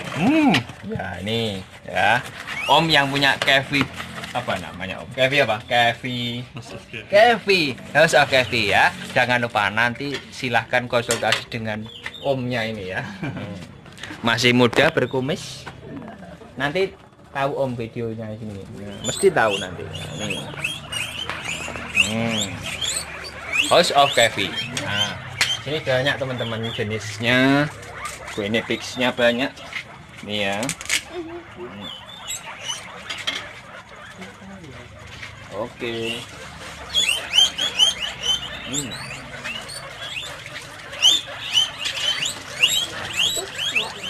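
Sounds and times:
guinea pigs squeaking: 0:00.0 - 0:44.0.

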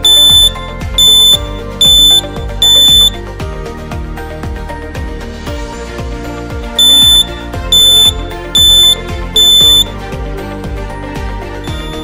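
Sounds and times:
piezo buzzer beeps: 0:00.0 - 0:03.2, 0:06.8 - 0:10.0, 0:11.6 - 0:12.0.

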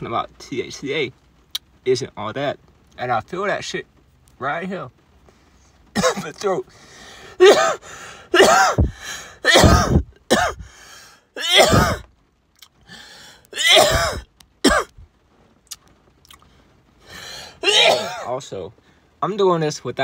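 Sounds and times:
man coughing hard: 0:06.0 - 0:06.4, 0:07.4 - 0:10.7, 0:11.4 - 0:12.0, 0:13.6 - 0:15.0, 0:17.6 - 0:18.3.

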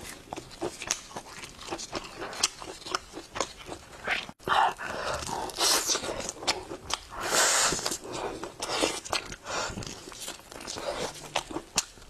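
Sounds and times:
chewing mouth sounds: 0:00.0 - 0:12.0.

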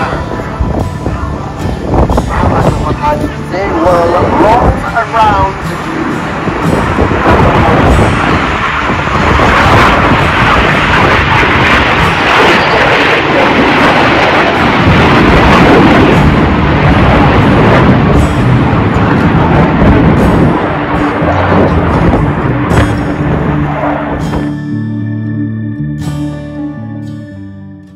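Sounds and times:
jet engines roaring past: 0:00.0 - 0:26.2
gentle guitar music: 0:00.0 - 0:27.9.

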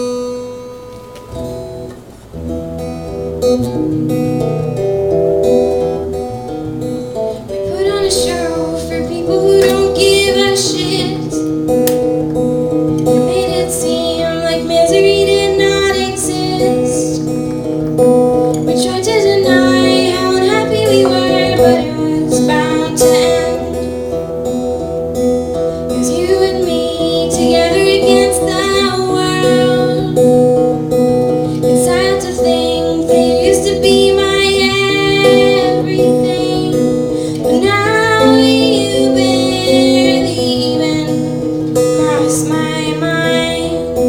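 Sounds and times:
strummed guitar: 0:00.0 - 0:44.0
woman singing: 0:07.6 - 0:11.4, 0:13.0 - 0:17.4, 0:18.5 - 0:24.0, 0:25.9 - 0:44.0.

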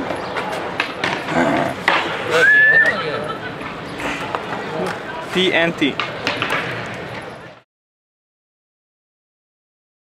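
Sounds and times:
high squeal: 0:02.3 - 0:03.0.

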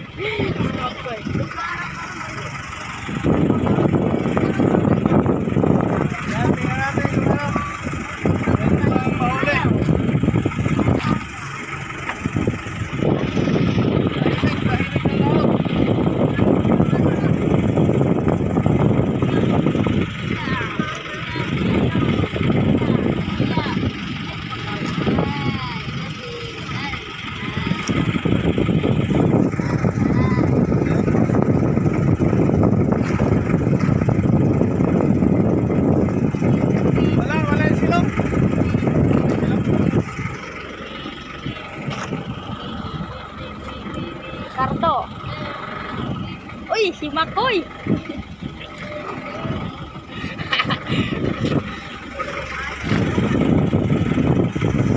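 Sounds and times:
boat engine running: 0:00.0 - 0:54.9
faint voices: 0:00.0 - 0:54.9.

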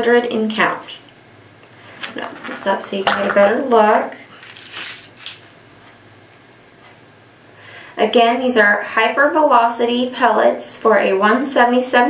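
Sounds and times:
pellets rattling and clicking: 0:04.3 - 0:05.6.

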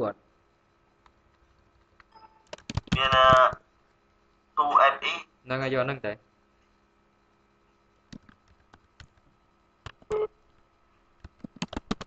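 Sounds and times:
computer keyboard keystrokes: 0:01.0 - 0:03.6, 0:08.1 - 0:10.2, 0:11.2 - 0:12.0.

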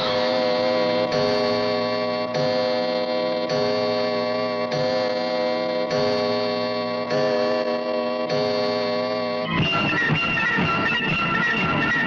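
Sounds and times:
synthesizer chord: 0:00.0 - 0:12.0.

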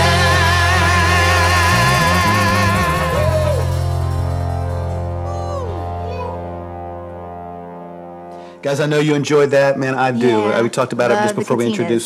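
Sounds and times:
man's voice: 0:00.0 - 0:03.7, 0:08.6 - 0:12.0
low bass note: 0:00.0 - 0:09.4
band chord ringing out: 0:00.0 - 0:12.0.

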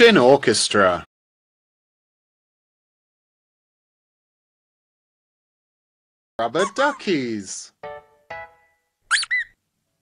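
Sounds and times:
cartoon toots: 0:06.6 - 0:07.1, 0:09.1 - 0:09.6
high rubber duck squeaks: 0:06.6 - 0:07.1, 0:09.1 - 0:09.6.

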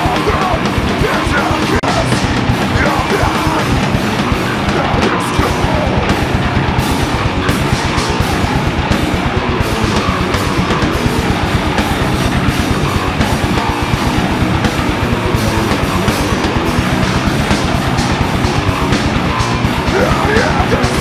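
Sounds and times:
live heavy rock band: 0:00.0 - 0:21.0
rapid drum hits: 0:00.0 - 0:21.0
wavering high guitar line: 0:00.0 - 0:21.0.

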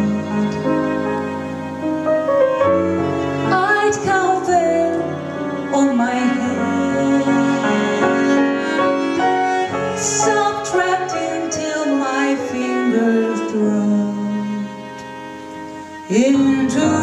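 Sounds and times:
cello bowed notes: 0:00.0 - 0:17.0
piano: 0:00.0 - 0:17.0
woman singing jazz: 0:03.5 - 0:08.0, 0:09.9 - 0:15.1, 0:16.0 - 0:17.0.

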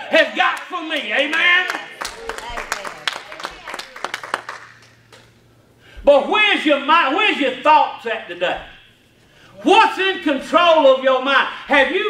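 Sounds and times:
steady low hum: 0:00.0 - 0:12.0
hand claps: 0:00.6 - 0:05.4.

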